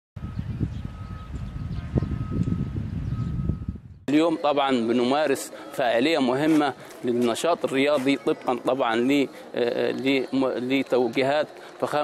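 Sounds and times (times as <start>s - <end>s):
wind buffeting microphone: 0.2s - 4.1s.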